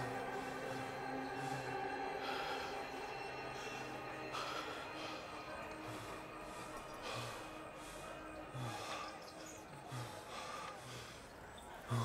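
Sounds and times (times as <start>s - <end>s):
man breathing hard: 0.0s - 12.0s.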